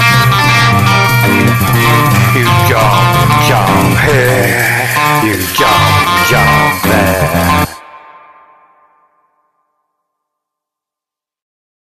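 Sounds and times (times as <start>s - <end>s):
blues band final chord: 0.0s - 9.0s.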